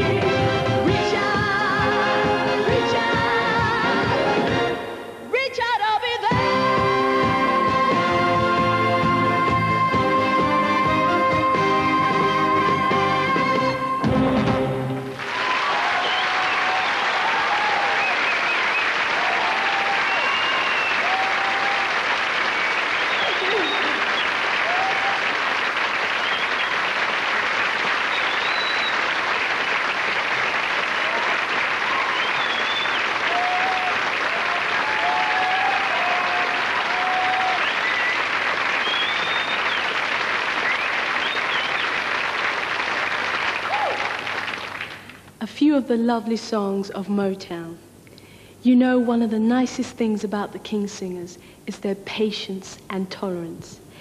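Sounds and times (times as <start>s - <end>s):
audience applauding: 14.8s - 45.2s
audience calls: 15.0s - 45.0s
whistles: 16.0s - 16.6s, 17.8s - 19.0s, 20.0s - 21.4s, 22.5s - 24.4s, 26.2s - 26.8s, 28.0s - 29.1s, 31.9s - 33.2s, 37.3s - 40.0s, 40.6s - 42.0s.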